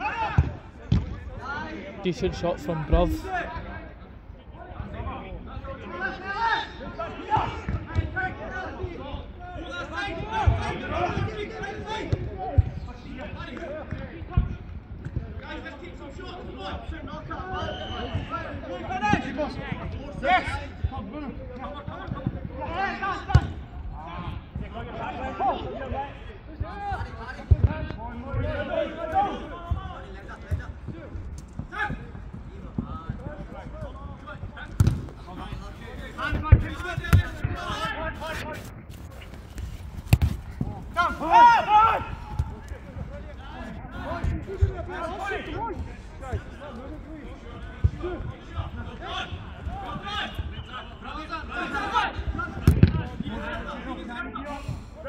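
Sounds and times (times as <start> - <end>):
players shouting: 0.0 - 0.7, 5.6 - 13.8, 34.3 - 39.3, 40.1 - 54.5
football kicked thuds: 34.7 - 35.3, 36.2 - 37.8, 40.0 - 40.8, 52.6 - 53.2.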